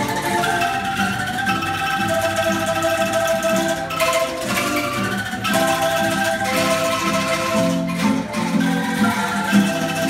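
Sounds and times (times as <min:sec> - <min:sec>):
bamboo angklung ensemble melody: 0:00.0 - 0:10.0.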